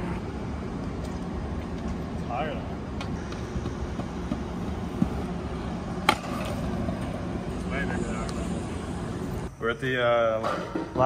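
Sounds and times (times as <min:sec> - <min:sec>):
scooter wheels rolling on concrete: 0:00.0 - 0:09.5.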